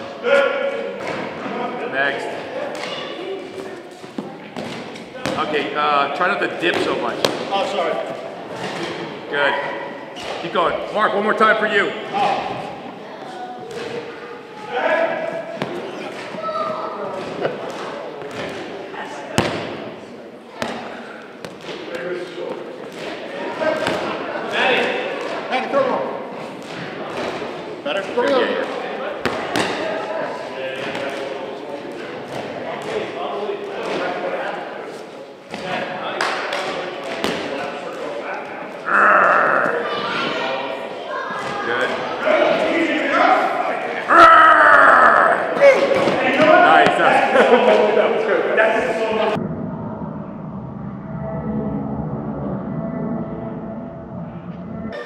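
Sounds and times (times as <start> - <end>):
balls bouncing on gym floor: 2.7 - 5.8, 6.6 - 7.7, 15.6 - 19.9, 20.5 - 24.1, 28.2 - 29.8, 36.5 - 37.6, 45.5 - 47.0
indistinct voices: 35.4 - 55.0.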